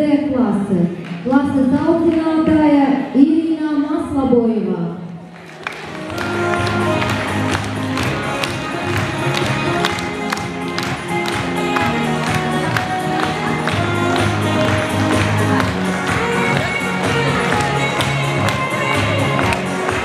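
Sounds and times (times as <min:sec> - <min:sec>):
music with a steady beat: 0:05.8 - 0:20.0.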